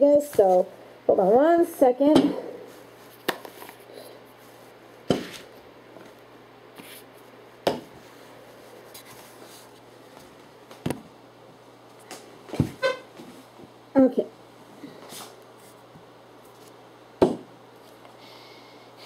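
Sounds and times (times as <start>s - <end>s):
fan humming: 0.0s - 19.0s.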